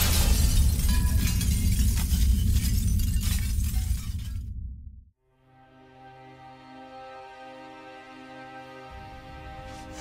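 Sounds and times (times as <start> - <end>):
glass shattering: 0.0 - 4.7.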